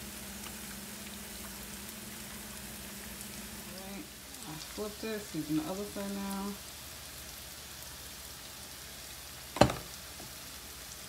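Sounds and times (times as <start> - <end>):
peppers sizzling in a pan: 0.0 - 11.0.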